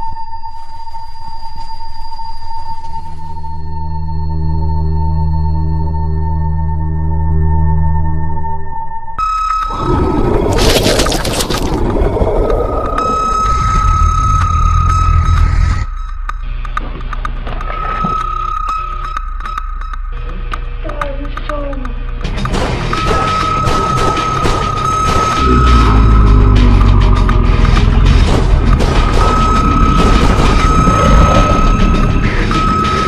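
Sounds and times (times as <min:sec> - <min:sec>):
eerie electronic tone: 0:00.0 - 0:20.8, 0:22.9 - 0:33.0
low rumble: 0:25.4 - 0:32.8.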